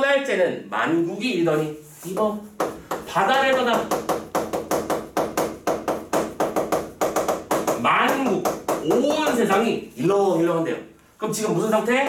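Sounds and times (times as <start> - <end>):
chalk tapping on chalkboard: 1.2 - 10.2.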